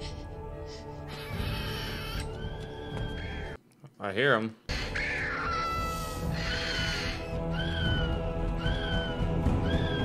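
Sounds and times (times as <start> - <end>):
creature shrill cries: 1.1 - 3.3, 4.7 - 10.0.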